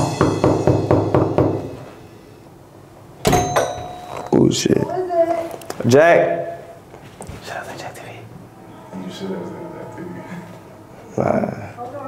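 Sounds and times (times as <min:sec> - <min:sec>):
knuckles knocking on door: 0:00.2 - 0:01.6.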